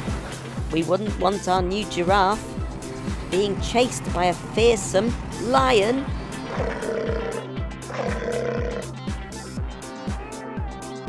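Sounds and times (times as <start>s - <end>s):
cartoon lion roar: 6.4s - 8.9s.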